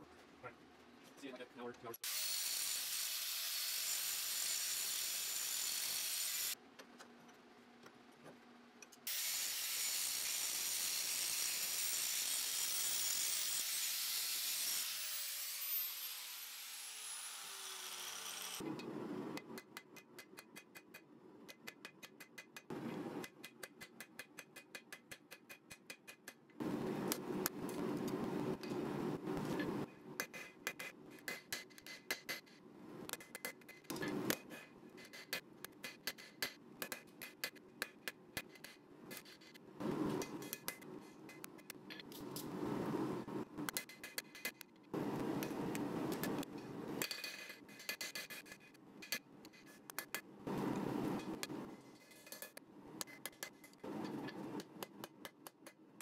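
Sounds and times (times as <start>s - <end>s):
angle grinder cutting steel: 2.0s - 6.6s, 9.1s - 18.6s.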